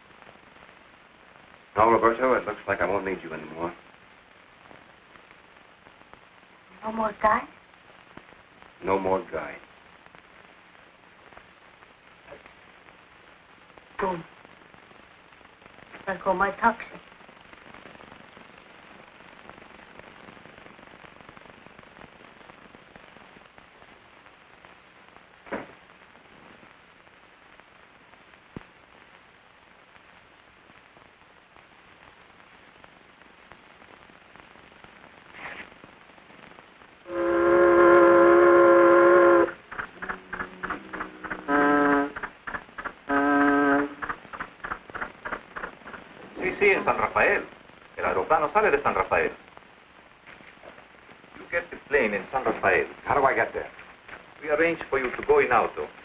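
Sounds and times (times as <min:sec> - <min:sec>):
film soundtrack hiss: 0:00.0 - 0:56.0
horn blasts: 0:37.1 - 0:42.2, 0:43.1 - 0:44.0.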